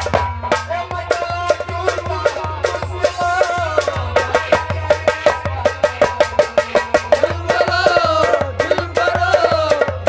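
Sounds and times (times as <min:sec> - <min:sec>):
quick percussive beat: 0:00.0 - 0:10.0.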